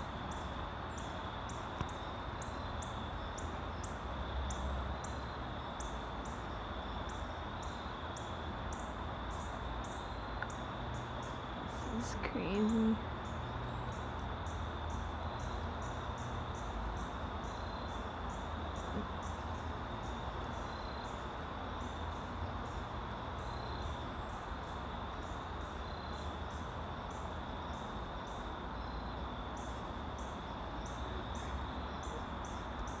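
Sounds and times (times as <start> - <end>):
insects chirping: 0.0 - 33.0
steady high insect trill: 0.0 - 33.0.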